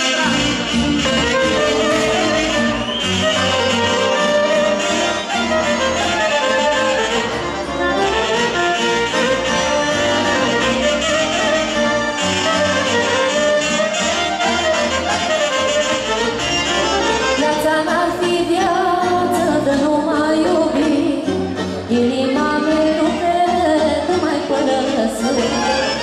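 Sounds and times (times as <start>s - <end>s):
accordion accompaniment: 0.0s - 26.0s
violin melody: 0.0s - 26.0s.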